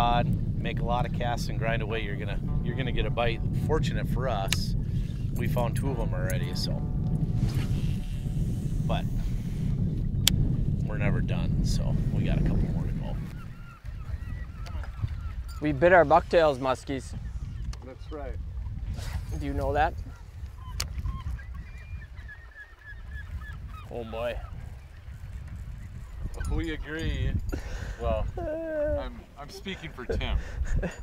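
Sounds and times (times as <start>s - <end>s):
low rumble: 0.0s - 21.2s
wind buffeting microphone: 0.0s - 31.0s.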